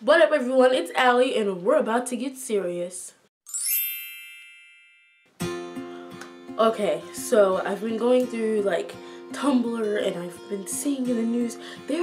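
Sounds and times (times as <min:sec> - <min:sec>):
bright high chime: 0:03.4 - 0:05.5.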